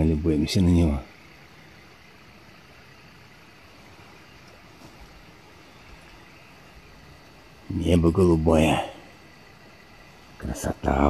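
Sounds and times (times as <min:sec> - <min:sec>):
faint outdoor background noise: 0:00.0 - 0:11.0
soft bumps: 0:04.4 - 0:05.4.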